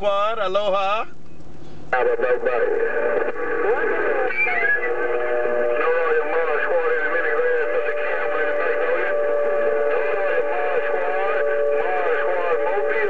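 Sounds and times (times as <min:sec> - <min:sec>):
garbled radio signals: 0:01.8 - 0:13.0
heterodyne whistle: 0:04.3 - 0:05.0.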